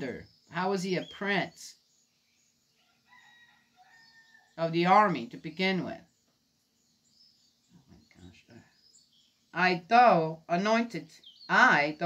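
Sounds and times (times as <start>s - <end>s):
rooster crowing: 2.8s - 4.6s.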